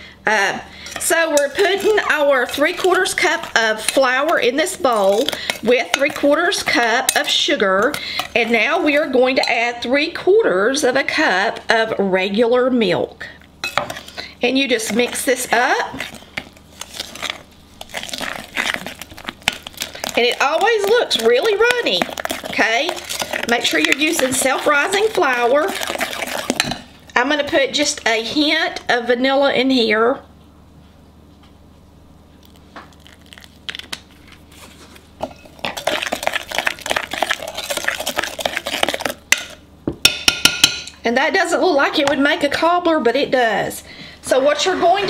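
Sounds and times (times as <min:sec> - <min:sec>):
spoon stirring batter: 0:00.7 - 0:09.8, 0:13.6 - 0:28.0, 0:32.4 - 0:39.6.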